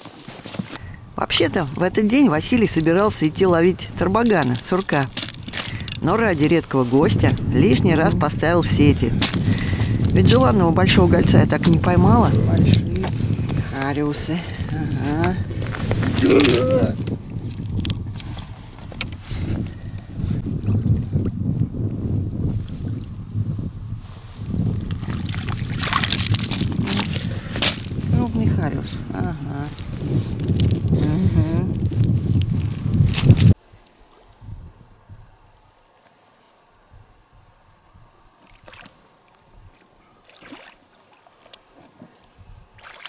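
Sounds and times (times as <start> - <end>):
wet net rustling and crackling: 0.0 - 7.9, 11.1 - 21.2, 22.3 - 31.0, 31.6 - 34.4, 38.3 - 43.0
faint water sounds: 0.0 - 43.0
person's voice: 1.2 - 9.2, 10.0 - 15.5, 16.1 - 17.0, 28.1 - 29.9, 31.0 - 31.8.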